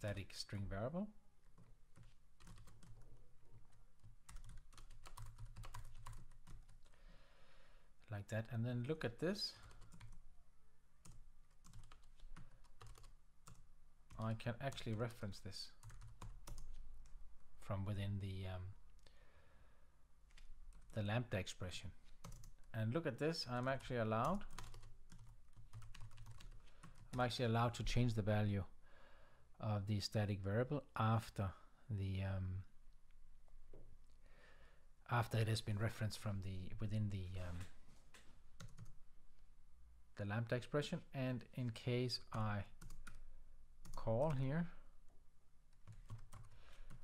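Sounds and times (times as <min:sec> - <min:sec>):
computer keyboard typing: 0:01.6 - 0:06.9, 0:09.6 - 0:10.2, 0:11.0 - 0:15.0, 0:15.8 - 0:17.2, 0:22.2 - 0:22.6, 0:23.7 - 0:27.2, 0:38.6 - 0:39.0, 0:42.8 - 0:43.2, 0:45.7 - 0:47.0.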